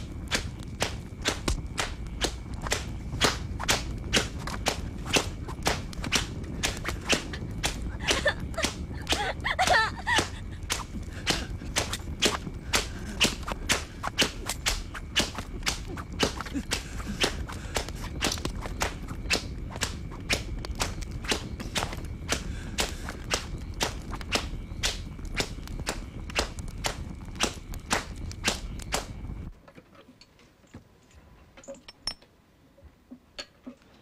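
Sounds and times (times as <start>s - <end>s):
low steady rumble: 0.0s - 29.5s.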